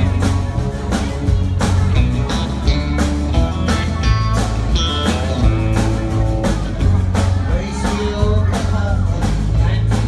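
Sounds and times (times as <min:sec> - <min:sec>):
live country band playing: 0:00.0 - 0:10.0.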